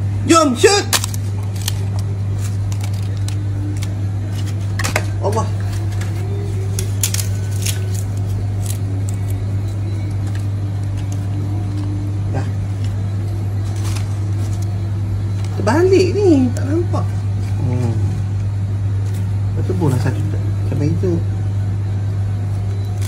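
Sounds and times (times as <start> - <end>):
steady low hum: 0.0 - 23.0
papadum crackling: 0.3 - 20.7
plastic wrapping rustling: 0.9 - 15.8.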